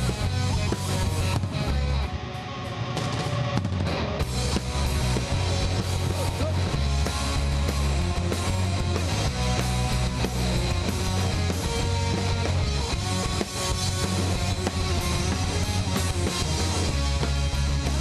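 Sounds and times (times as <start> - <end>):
drum kit: 0.0 - 18.0
electric bass: 0.0 - 18.0
electric guitars: 0.0 - 18.0.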